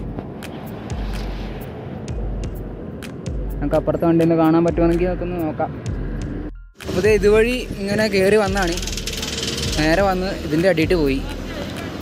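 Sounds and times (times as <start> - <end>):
cars passing on highway: 0.0 - 12.0.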